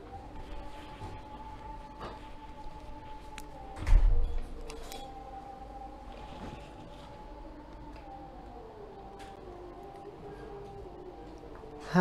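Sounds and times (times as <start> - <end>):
distant chanting over loudspeaker: 0.0 - 12.0.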